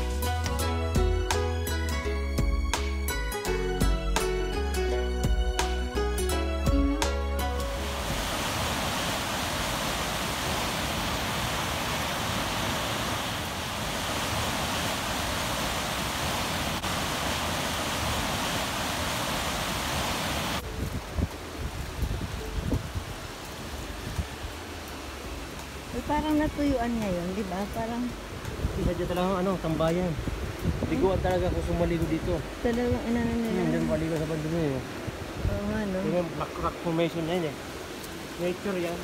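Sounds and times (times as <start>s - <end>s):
quieter running water: 0.0s - 39.0s
waterfall rushing water: 6.9s - 39.0s
wind and handling on microphone: 20.1s - 24.5s, 28.2s - 35.8s.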